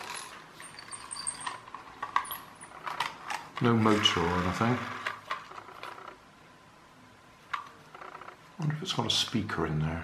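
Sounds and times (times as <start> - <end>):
toy car spring motor running: 0.0 - 6.0.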